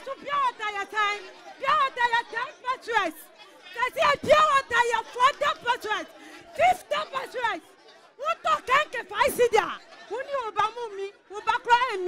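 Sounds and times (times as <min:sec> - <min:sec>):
woman speaking into a microphone: 0:00.0 - 0:12.0.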